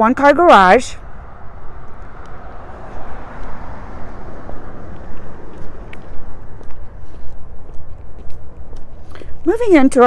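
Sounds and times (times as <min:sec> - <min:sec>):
distant traffic rush: 0:00.0 - 0:10.0.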